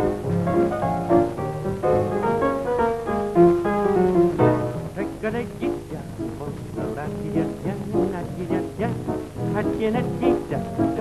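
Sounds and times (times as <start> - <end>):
double bass: 0.0 - 11.0
jazz piano: 0.0 - 11.0.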